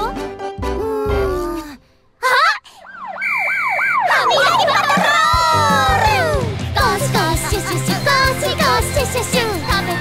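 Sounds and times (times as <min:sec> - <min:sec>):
cartoon police siren swoops: 0:02.7 - 0:05.9.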